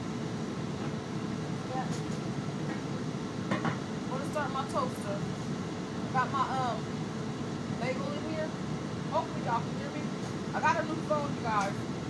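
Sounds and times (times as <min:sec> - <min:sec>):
range hood fan rushing: 0:00.0 - 0:12.0.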